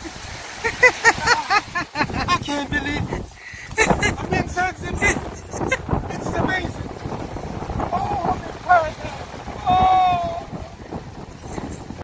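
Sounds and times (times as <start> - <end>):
wind buffeting microphone: 0.0 - 12.0
person calling out wordlessly: 9.6 - 10.7.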